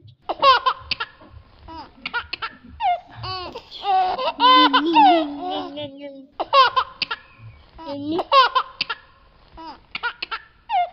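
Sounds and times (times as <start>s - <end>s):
young child laughing: 0.3s - 10.9s.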